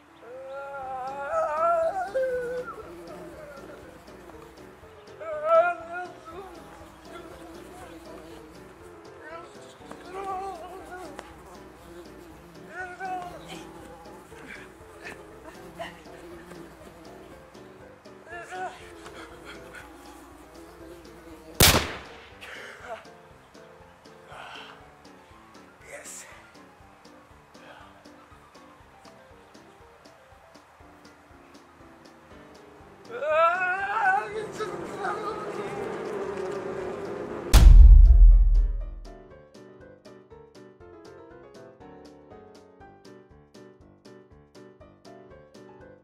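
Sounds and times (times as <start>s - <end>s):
background music: 0.0s - 46.0s
sudden loud bang: 37.6s - 39.1s.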